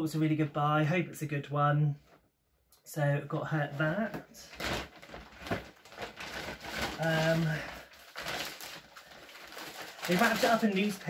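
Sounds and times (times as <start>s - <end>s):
plastic bag rustling: 3.8s - 11.0s
newspaper rustling and crinkling: 4.4s - 11.0s.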